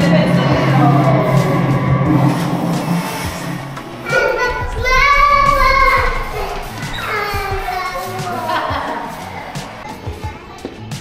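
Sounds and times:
background music: 0.0s - 11.0s
child squealing: 4.0s - 8.7s.

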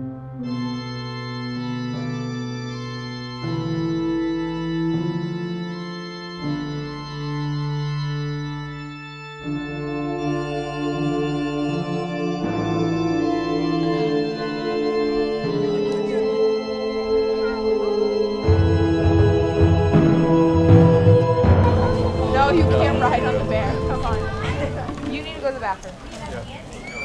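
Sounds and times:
organ playing slow chords: 0.0s - 25.1s.

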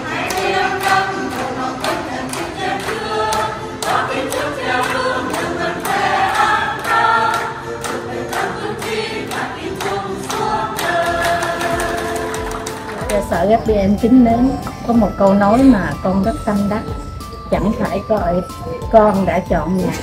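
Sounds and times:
choir singing a hymn: 0.0s - 13.8s
hands clapping: 0.1s - 13.4s.

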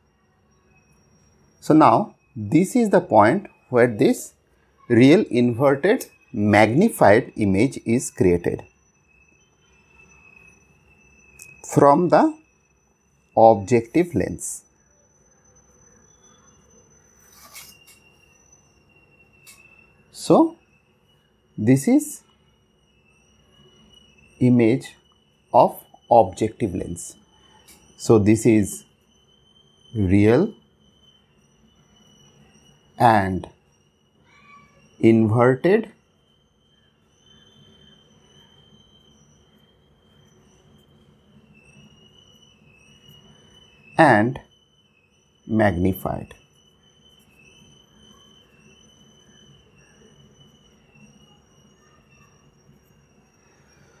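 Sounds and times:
faint high-pitched whine: 0.0s - 54.0s
thin high-pitched tone: 13.4s - 20.6s, 45.5s - 54.0s.

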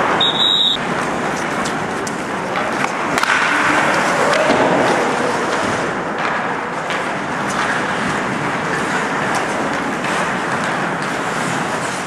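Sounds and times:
hockey sticks and puck clacking: 0.0s - 12.0s
skate blades scraping ice: 0.1s - 12.0s
whistle blast: 0.2s - 0.8s.

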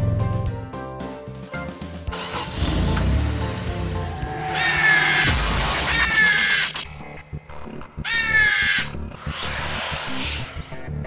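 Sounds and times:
cartoon background music: 0.0s - 11.0s
monster truck engine effect: 2.1s - 5.1s.

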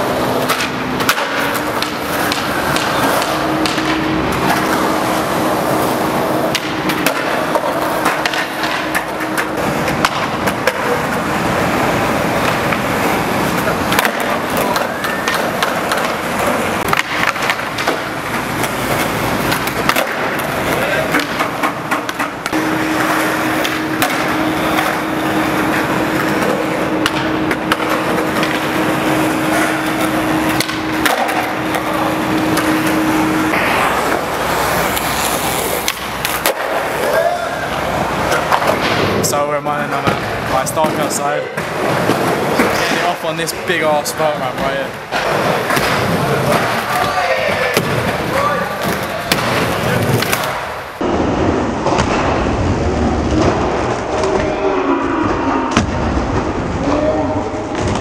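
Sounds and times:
skateboard wheels rolling on concrete: 0.0s - 58.0s
skateboard deck clattering: 0.4s - 37.4s.

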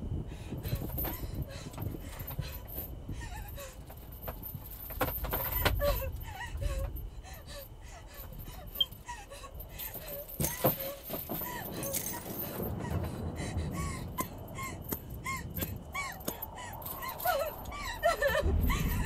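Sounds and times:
woman whimpering and sobbing: 0.6s - 4.6s, 5.3s - 19.0s
low rumble: 11.2s - 19.0s.

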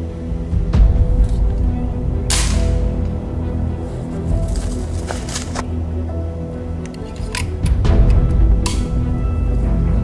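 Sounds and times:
background music: 0.0s - 10.0s
air rifle shot: 2.3s - 2.8s.

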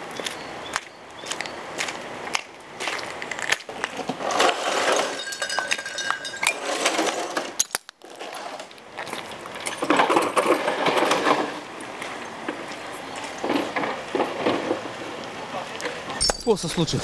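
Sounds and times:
glass crunching under feet: 2.8s - 8.2s.

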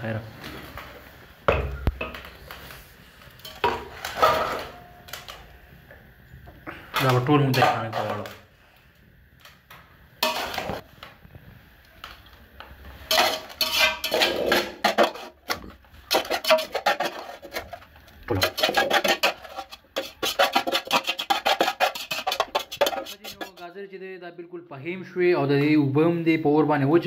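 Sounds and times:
metal pot scraping and clanking: 1.7s - 5.5s, 6.9s - 8.4s, 10.2s - 10.9s, 12.9s - 23.7s.

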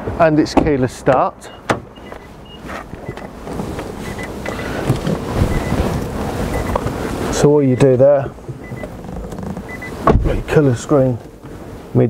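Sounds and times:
rustling on microphone: 2.0s - 12.0s
wind noise on microphone: 2.1s - 7.3s.

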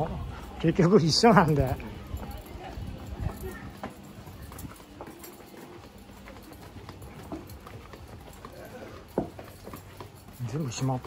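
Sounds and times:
footsteps on stone paving: 0.0s - 11.0s.

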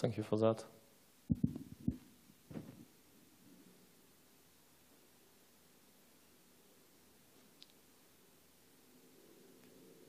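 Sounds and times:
low dull thumps: 1.3s - 2.9s.

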